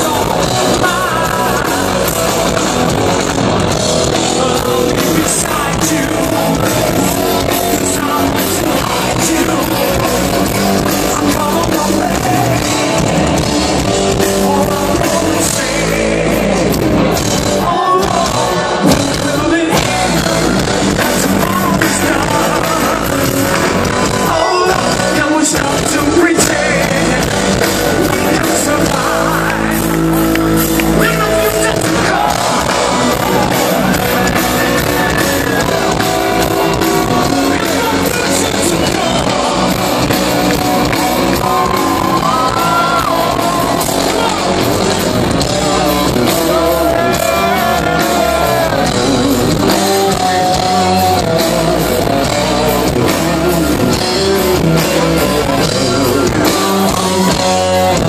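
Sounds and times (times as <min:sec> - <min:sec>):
live hard rock band: 0:00.0 - 0:58.0
person singing: 0:00.0 - 0:58.0.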